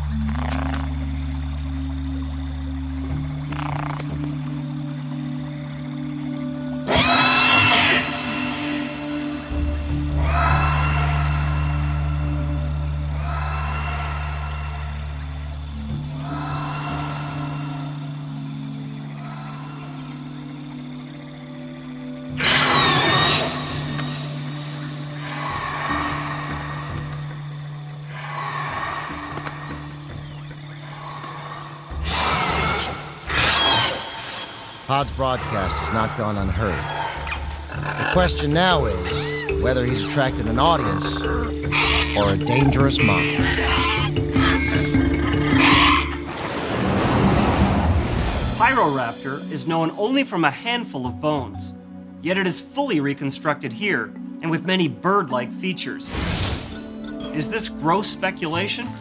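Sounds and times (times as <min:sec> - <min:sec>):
low held orchestral chords: 0:34.9 - 0:46.4.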